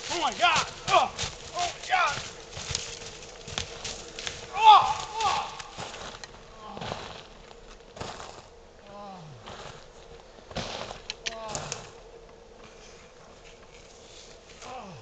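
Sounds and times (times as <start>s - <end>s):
rustling of movement: 0.0s - 15.0s
man groaning: 4.5s - 5.6s, 8.9s - 9.4s, 14.6s - 15.0s.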